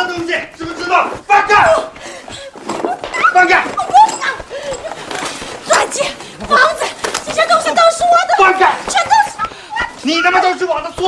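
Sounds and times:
rustling scuffle: 0:00.0 - 0:11.0.

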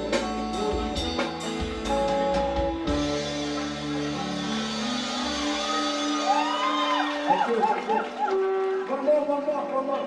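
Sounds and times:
live band music: 0:00.0 - 0:10.0
person whooping: 0:05.2 - 0:08.9.

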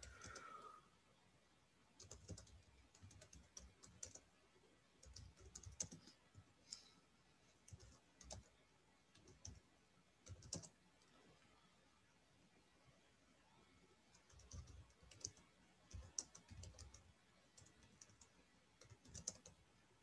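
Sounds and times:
typing on computer keyboard: 0:00.0 - 0:00.5, 0:02.0 - 0:04.3, 0:05.0 - 0:06.8, 0:07.7 - 0:08.5, 0:09.1 - 0:09.6, 0:10.2 - 0:10.8, 0:14.1 - 0:19.6.

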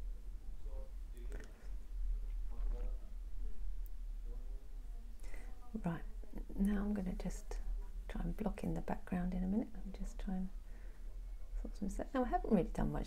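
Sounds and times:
steady low hum: 0:00.0 - 0:13.0
woman speaking: 0:05.3 - 0:10.6, 0:11.6 - 0:13.0.

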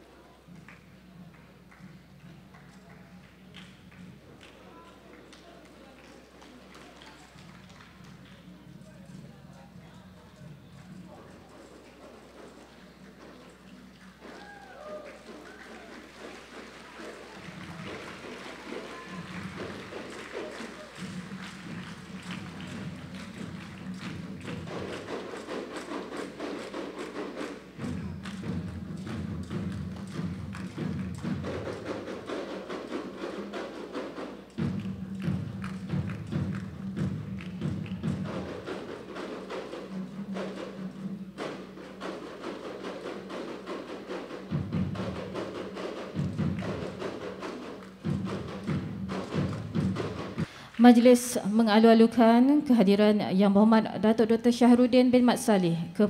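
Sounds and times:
quick drum beats: 0:00.0 - 0:53.1.

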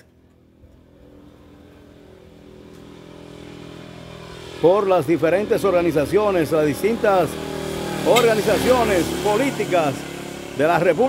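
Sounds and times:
vehicle engine approaching: 0:00.0 - 0:11.0.

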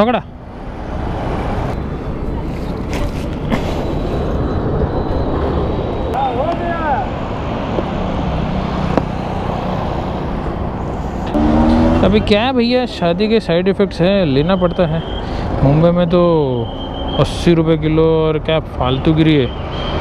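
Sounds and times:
roadside traffic and engine rumble: 0:00.0 - 0:20.0.

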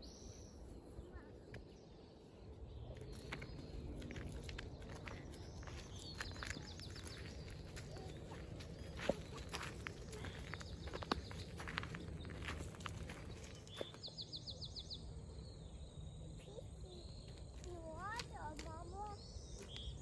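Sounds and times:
steady low rumble: 0:00.0 - 0:20.0
footsteps on dirt path: 0:02.7 - 0:14.5, 0:17.0 - 0:20.0
twigs and dry leaves crunching: 0:02.9 - 0:14.2.

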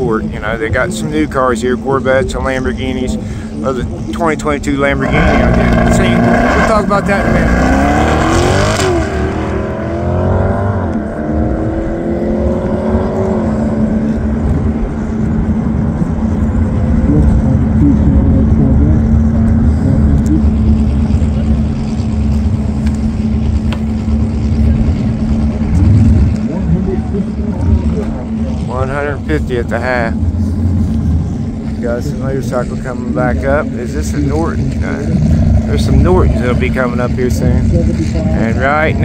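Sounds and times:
car engine accelerating hard: 0:00.0 - 0:39.0
low rumble and hum: 0:00.0 - 0:39.0.

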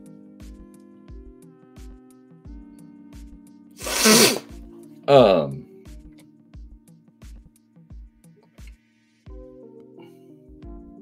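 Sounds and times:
background music with steady beat: 0:00.0 - 0:03.8, 0:04.4 - 0:11.0
man sneezing: 0:03.8 - 0:04.5, 0:05.1 - 0:05.6.

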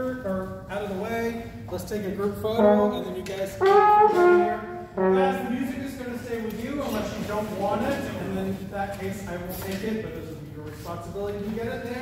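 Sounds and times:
jazz band playing: 0:02.6 - 0:06.0.

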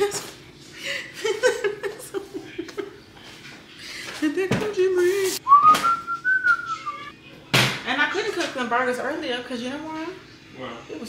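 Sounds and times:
person whistling: 0:05.4 - 0:07.1.

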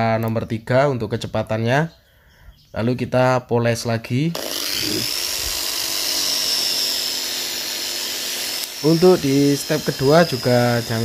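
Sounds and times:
electric polisher whining: 0:04.4 - 0:11.0.

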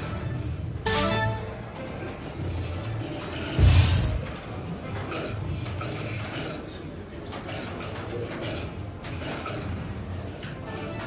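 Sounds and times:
background music: 0:00.0 - 0:04.3, 0:09.8 - 0:11.0
crowd noise: 0:00.9 - 0:02.2.

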